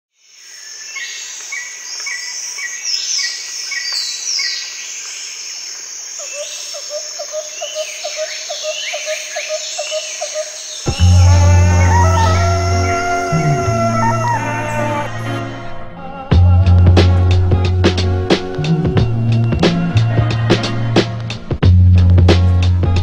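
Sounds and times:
insects buzzing: 4.8s - 15.5s
birds chirping and calling: 6.2s - 15.5s
deep bass music note: 10.9s - 14.3s.

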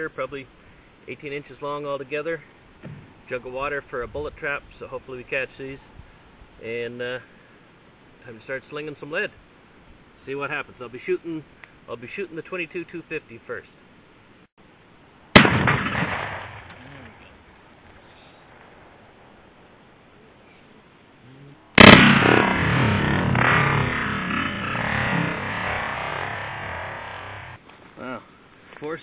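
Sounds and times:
rifle shots: 15.3s - 17.2s, 21.8s - 27.6s.

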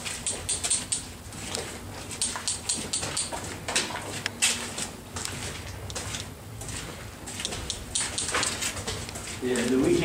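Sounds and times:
footsteps crunching on gritty floor: 3.3s - 10.0s.

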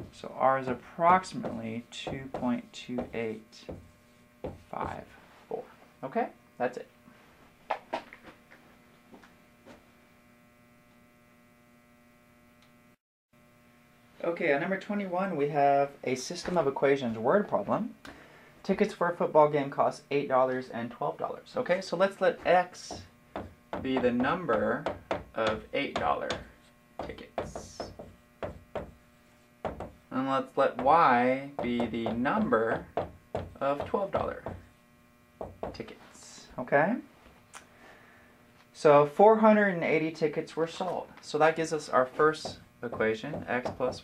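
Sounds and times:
faint electrical hum: 0.0s - 44.0s
marker writing on whiteboard: 27.0s - 29.0s.

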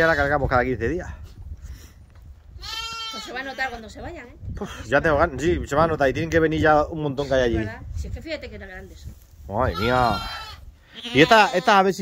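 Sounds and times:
lamb bleating: 2.6s - 3.8s, 9.6s - 11.9s.

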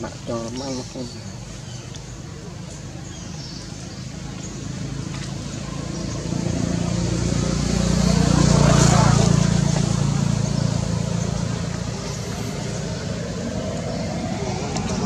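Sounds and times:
vehicle passing by: 4.0s - 15.0s.

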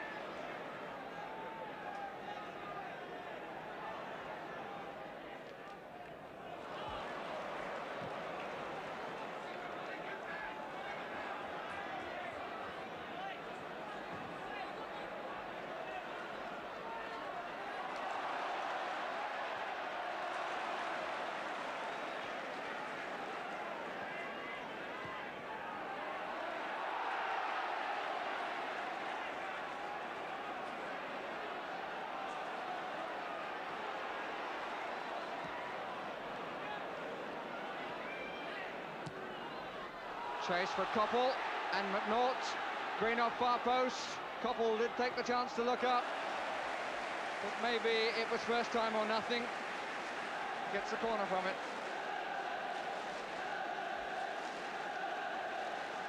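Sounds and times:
stadium crowd voices: 0.0s - 56.0s.

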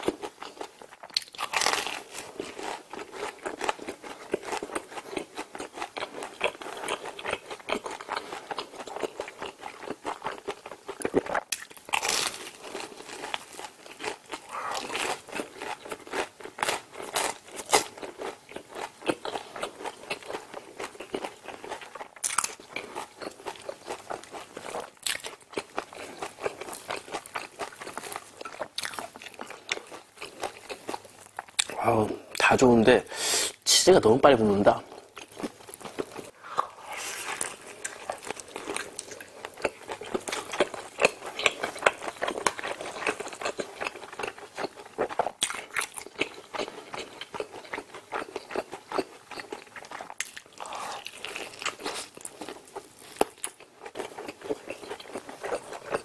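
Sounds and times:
crunchy food chewing: 0.0s - 32.5s, 34.8s - 56.0s.

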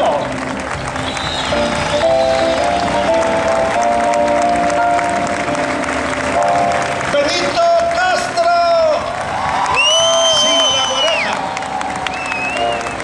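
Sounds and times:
audience applauding: 0.0s - 13.0s
band playing a fanfare: 0.0s - 13.0s.

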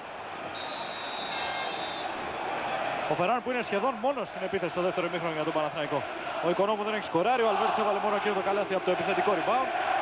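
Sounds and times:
crowd noise in arena: 0.0s - 10.0s
high whistle: 0.5s - 2.1s.

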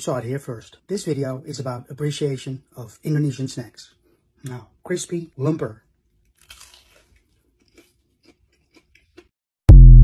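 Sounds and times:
chewing crunches: 6.2s - 9.3s
crunchy bite: 6.3s - 9.3s.

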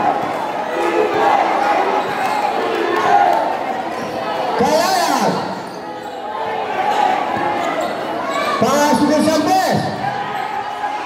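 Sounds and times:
crowd chattering and shouting: 0.0s - 11.0s.

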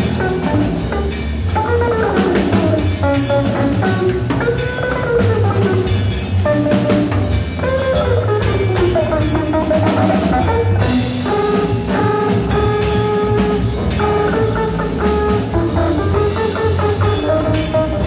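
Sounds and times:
busy drums and cymbals: 0.0s - 18.0s
free jazz trio improvising: 0.0s - 18.0s.

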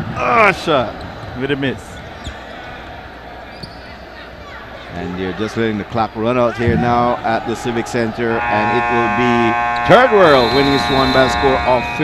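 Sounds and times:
faint voices in arena: 0.0s - 12.0s.

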